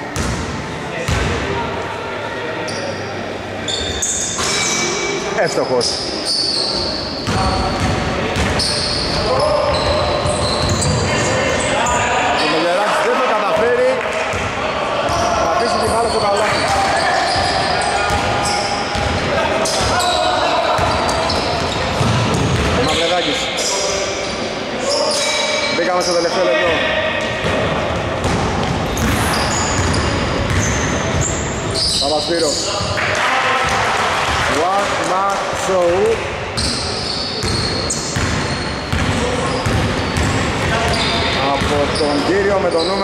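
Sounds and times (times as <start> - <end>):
players' voices and shouts: 0.8 - 43.0.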